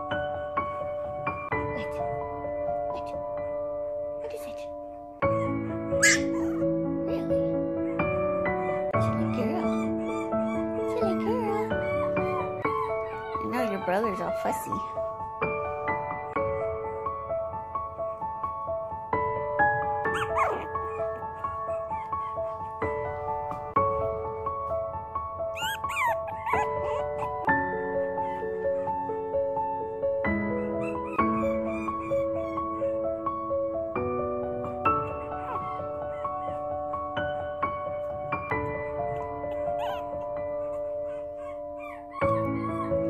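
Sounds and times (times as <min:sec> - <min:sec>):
background music: 0:00.0 - 0:43.0
puppies whining and yipping: 0:05.3 - 0:15.2, 0:20.1 - 0:23.8, 0:25.5 - 0:29.6, 0:30.2 - 0:33.0, 0:34.6 - 0:43.0.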